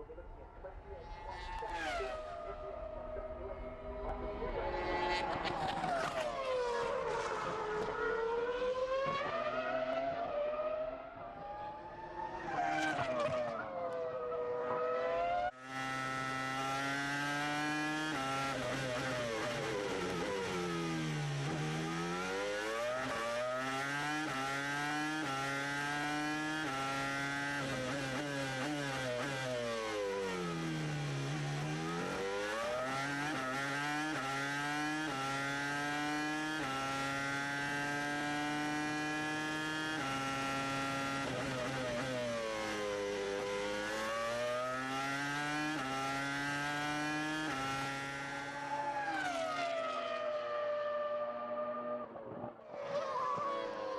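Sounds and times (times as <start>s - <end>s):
racing car engine at full revs: 1.4s - 53.9s.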